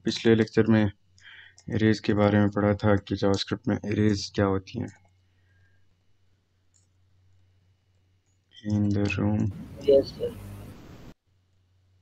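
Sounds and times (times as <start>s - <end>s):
low steady hum: 0.0s - 12.0s
person speaking: 8.6s - 10.6s.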